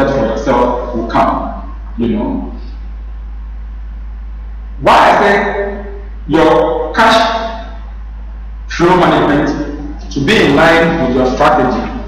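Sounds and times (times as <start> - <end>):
man speaking: 0.0 - 2.6, 4.8 - 7.8, 8.7 - 12.0
low hum with hiss: 0.0 - 12.0.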